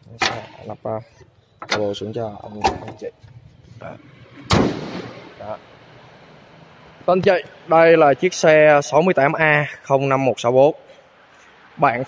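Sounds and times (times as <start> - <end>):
car hood slamming shut: 4.5 - 5.3.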